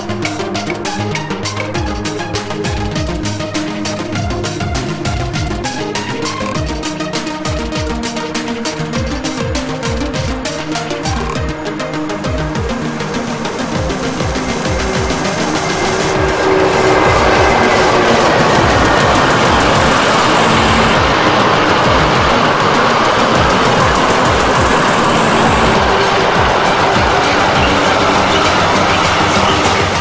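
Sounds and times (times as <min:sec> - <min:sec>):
background music: 0:00.0 - 0:30.0
freight train wheels on rails: 0:00.0 - 0:30.0.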